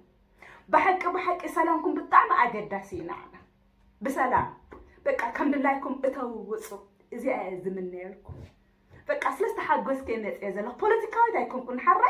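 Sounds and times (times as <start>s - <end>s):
woman speaking: 0.7s - 12.0s.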